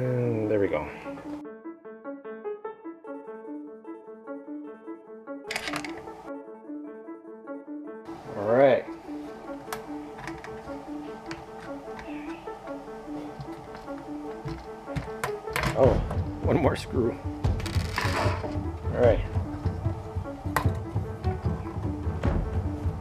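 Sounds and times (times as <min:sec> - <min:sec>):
piano music: 0:00.0 - 0:23.0
small metal parts clicking: 0:05.5 - 0:06.1.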